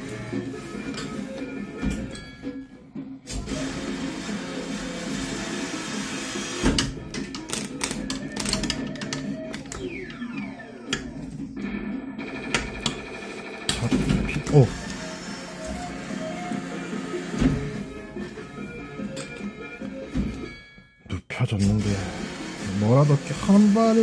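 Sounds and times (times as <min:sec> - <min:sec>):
electronic arcade music: 0:00.0 - 0:20.6.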